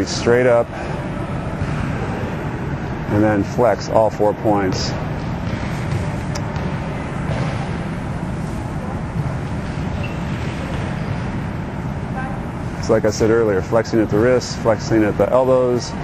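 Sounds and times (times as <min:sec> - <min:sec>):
low hum with hiss: 0:00.0 - 0:16.0.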